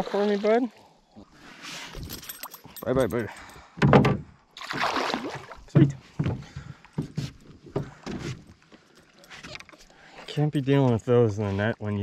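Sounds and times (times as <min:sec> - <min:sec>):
gear knocking and clattering in canoe: 0:05.7 - 0:09.8.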